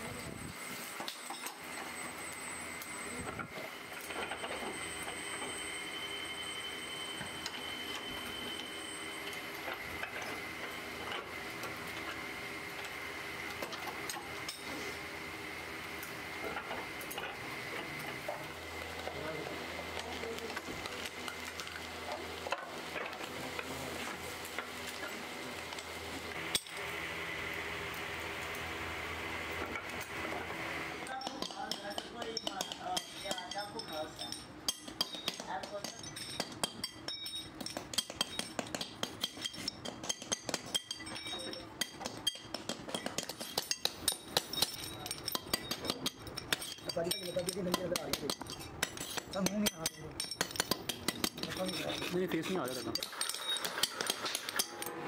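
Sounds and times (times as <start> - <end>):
workshop hum: 0.0 - 55.0.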